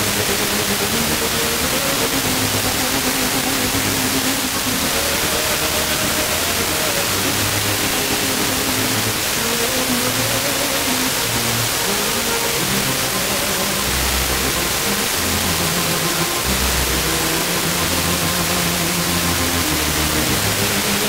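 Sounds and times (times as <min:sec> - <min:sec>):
radio static hiss: 0:00.0 - 0:21.0.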